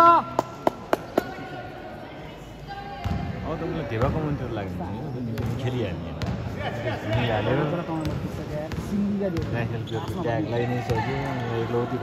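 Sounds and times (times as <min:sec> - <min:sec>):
murmur of sports hall: 0:00.0 - 0:12.0
basketball bouncing on court: 0:03.0 - 0:03.3, 0:05.4 - 0:06.5, 0:07.1 - 0:11.4.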